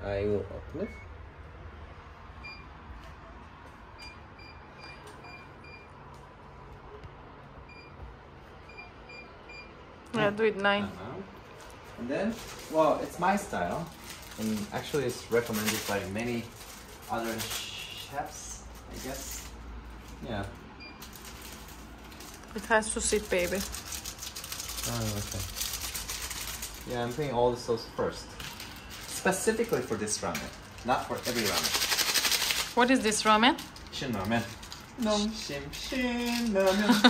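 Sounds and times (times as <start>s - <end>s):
seasoning packet crinkling: 21.0s - 27.7s, 28.4s - 37.0s
flakes shaken into pot: 23.0s - 27.6s, 28.6s - 37.0s.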